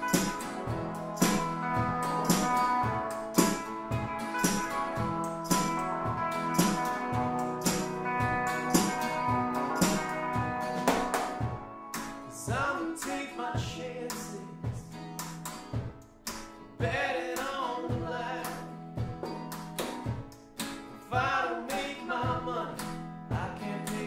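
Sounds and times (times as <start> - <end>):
drum kit beat: 0.0 - 14.9, 15.6 - 17.1, 17.9 - 20.4, 22.3 - 22.6, 23.3 - 23.6
electric and acoustic guitars: 0.0 - 24.0.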